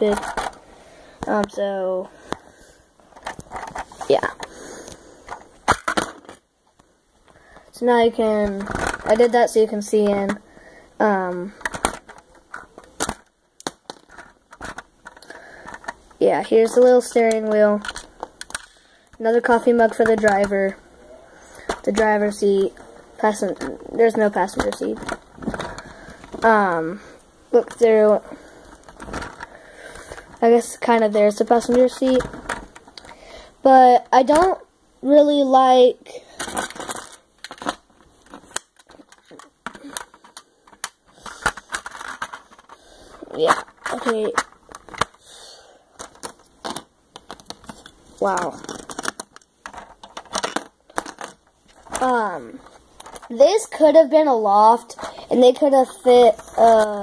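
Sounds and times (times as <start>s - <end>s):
plastic bricks clicking and knocking: 0.0s - 0.6s, 8.1s - 10.4s, 11.2s - 20.6s, 21.5s - 26.9s, 27.6s - 33.2s, 36.4s - 45.2s, 45.9s - 53.4s.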